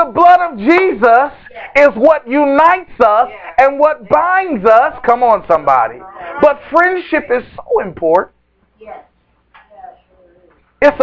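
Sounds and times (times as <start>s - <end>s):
man preaching: 0.0s - 8.3s.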